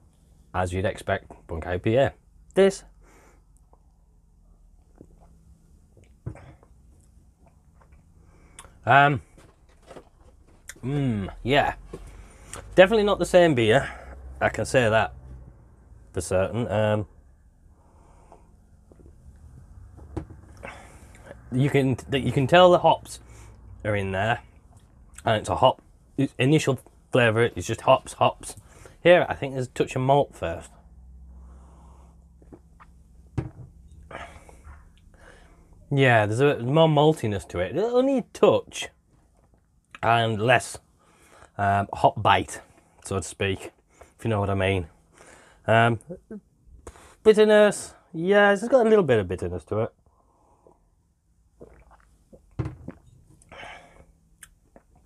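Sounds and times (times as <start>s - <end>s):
man sipping and swallowing: 4.9s - 5.4s, 32.4s - 35.1s, 51.6s - 53.7s
sipping from a glass mug: 51.6s - 53.2s.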